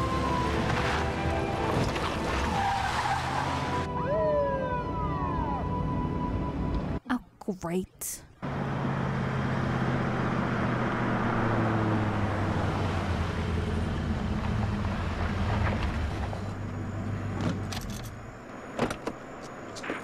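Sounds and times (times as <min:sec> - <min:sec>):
road noise: 0:00.0 - 0:07.1, 0:08.4 - 0:20.0.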